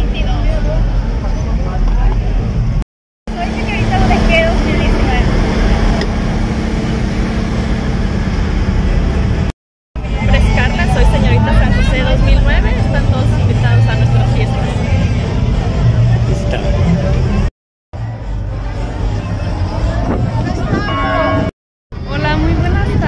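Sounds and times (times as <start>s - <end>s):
voices and chatter: 0.0s - 6.9s, 10.0s - 23.0s
vehicle engine running: 0.0s - 21.3s.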